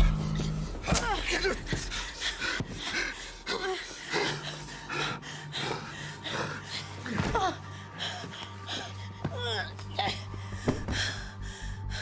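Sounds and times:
low pulsing music score: 0:00.0 - 0:12.0
woman breathing heavily: 0:00.0 - 0:12.0.

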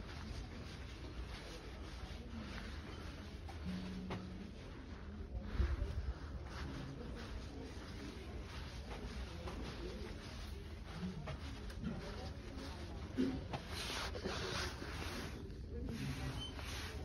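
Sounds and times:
faint indistinct voices: 0:00.0 - 0:17.0
soft rustles: 0:00.0 - 0:17.0.

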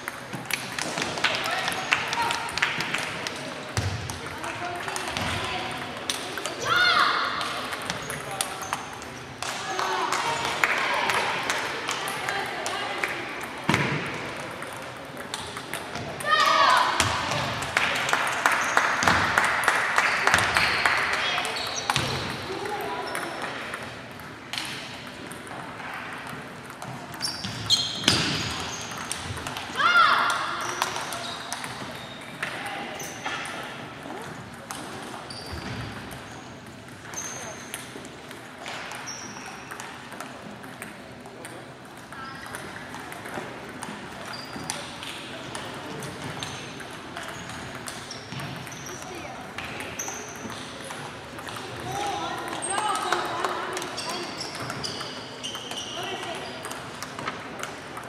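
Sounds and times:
table tennis balls clicking: 0:00.0 - 0:06.7, 0:07.4 - 0:58.0.

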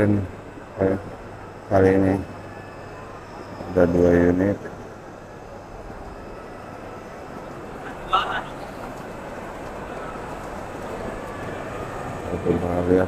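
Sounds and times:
murmur of voices: 0:00.0 - 0:13.0
steady hall hum: 0:00.0 - 0:13.0.

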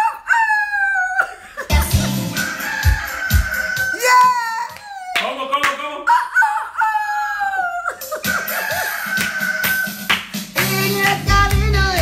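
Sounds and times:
children's song: 0:01.6 - 0:04.4, 0:09.8 - 0:12.0
rooster crowing: 0:02.2 - 0:04.5, 0:08.2 - 0:10.3
hand claps: 0:04.1 - 0:05.8, 0:09.1 - 0:11.8.

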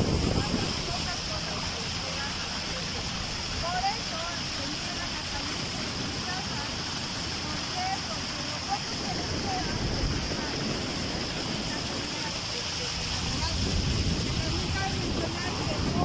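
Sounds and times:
motorboat engine: 0:00.0 - 0:16.0
water rushing: 0:00.0 - 0:16.0
wind on microphone: 0:00.0 - 0:16.0.

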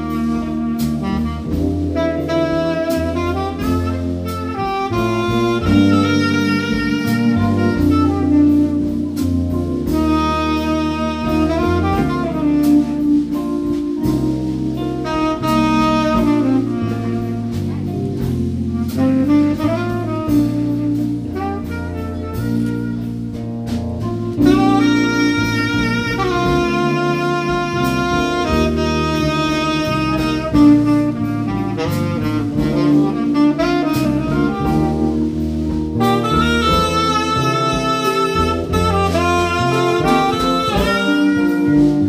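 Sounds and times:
drum kit: 0:00.0 - 0:42.0
electric bass: 0:00.0 - 0:42.0
saxophone melody: 0:00.0 - 0:42.0.

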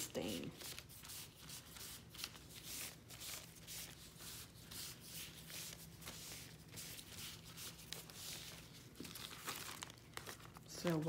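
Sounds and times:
paper towel rubbing on paper: 0:00.0 - 0:08.9.

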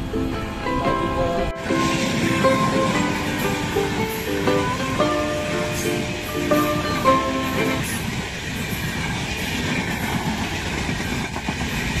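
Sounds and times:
moving train rumble: 0:00.0 - 0:12.0.

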